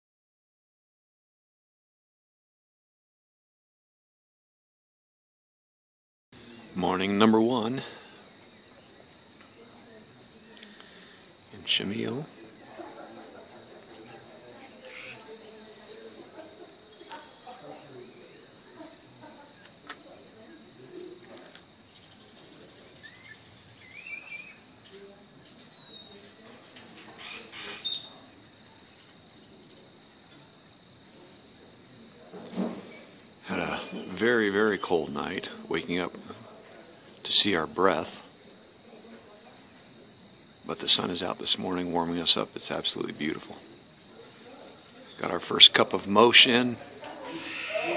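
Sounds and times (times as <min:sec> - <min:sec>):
distant voices murmuring: 0:06.4 - 0:47.9
insects trilling: 0:06.4 - 0:47.9
bird chirping: 0:11.3 - 0:12.8, 0:14.8 - 0:18.3, 0:21.8 - 0:30.9, 0:38.4 - 0:39.3.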